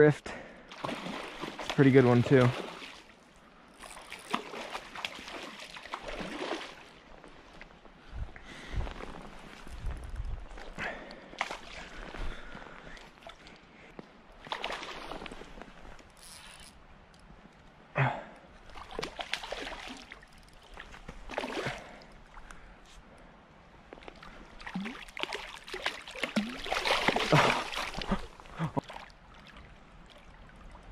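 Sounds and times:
creek water trickling: 0:00.4 - 0:30.9.

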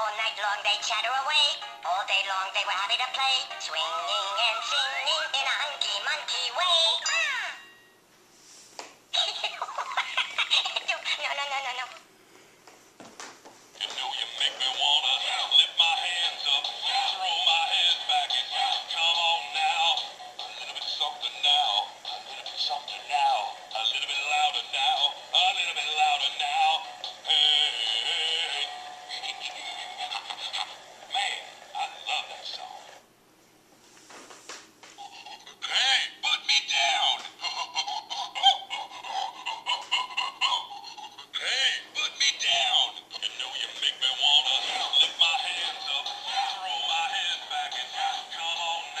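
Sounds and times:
toy singing through small speaker: 0:00.0 - 0:07.7, 0:13.8 - 0:32.9, 0:35.0 - 0:49.0.

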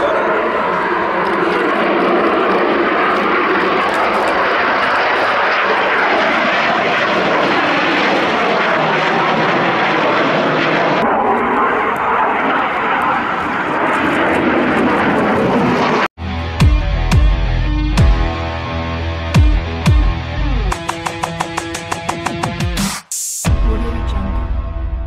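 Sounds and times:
jet engines running: 0:00.0 - 0:23.0.

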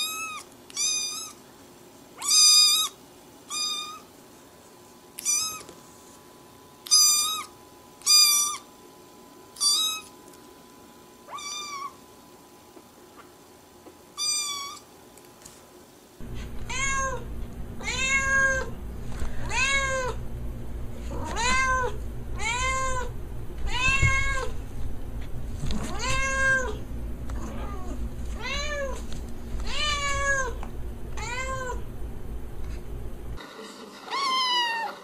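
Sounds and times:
low hum: 0:16.2 - 0:33.4
kitten mewing: 0:16.3 - 0:18.8, 0:19.4 - 0:20.2, 0:21.1 - 0:24.6, 0:25.8 - 0:26.8.

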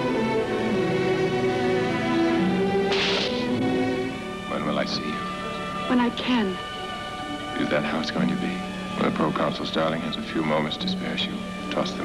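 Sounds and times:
orchestral music with strings: 0:00.0 - 0:12.0
hissing swish: 0:02.9 - 0:03.5.

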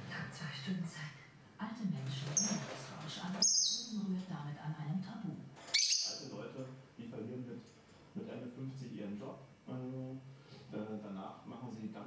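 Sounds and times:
lovebird chirps: 0:03.4 - 0:04.0, 0:05.7 - 0:06.2.

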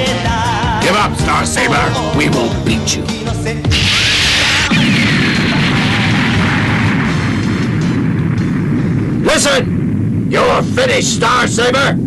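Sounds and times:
background music: 0:00.0 - 0:09.2
loud hissing blast: 0:03.6 - 0:11.3
low rumble: 0:03.6 - 0:12.0.

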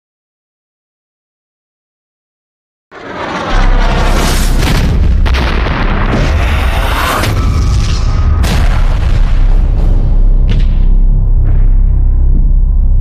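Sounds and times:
artillery blasts: 0:03.2 - 0:11.1
low explosion rumble: 0:03.2 - 0:13.0.

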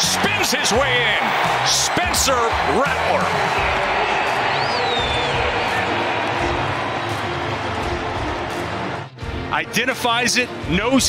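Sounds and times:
stadium crowd cheering: 0:00.0 - 0:09.2.

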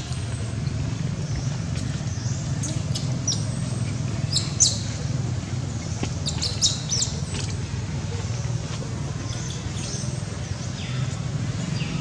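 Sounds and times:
small birds chirping: 0:00.0 - 0:12.0
steady low hum: 0:00.0 - 0:12.0.

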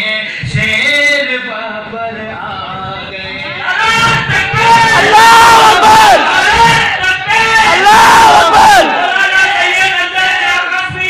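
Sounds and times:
man shouting over loudspeaker: 0:03.0 - 0:11.0
crowd shouting: 0:03.5 - 0:11.0.

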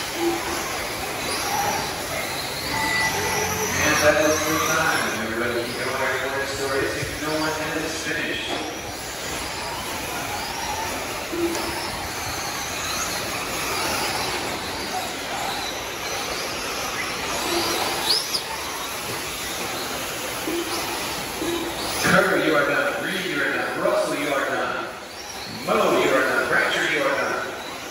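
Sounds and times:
rc car motor whines: 0:00.0 - 0:27.9.

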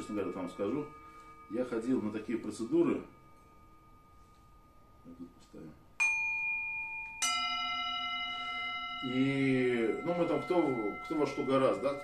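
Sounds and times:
singing bowls struck and ringing: 0:00.0 - 0:12.0.

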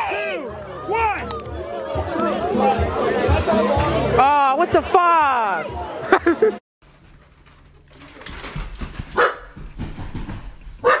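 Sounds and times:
small dog barking: 0:09.2 - 0:09.4.

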